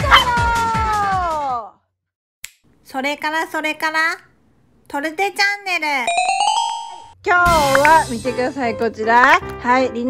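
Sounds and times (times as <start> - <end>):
dog whining: 0.0 - 0.5.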